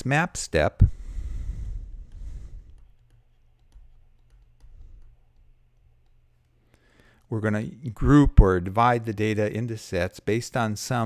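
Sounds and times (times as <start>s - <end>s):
low room noise: 0.0s - 11.0s
input device clicks and taps: 2.1s - 6.6s.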